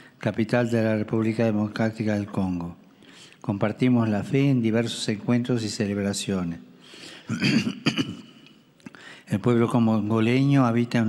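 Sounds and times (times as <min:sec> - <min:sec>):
man clearing his throat: 0:07.2 - 0:08.4.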